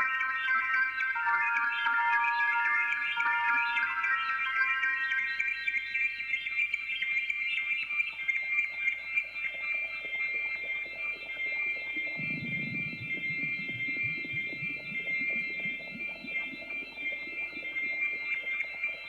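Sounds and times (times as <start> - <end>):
high sustained synth tones: 0.0 - 6.0, 10.0 - 19.0
low fluttering synth line: 11.2 - 19.0.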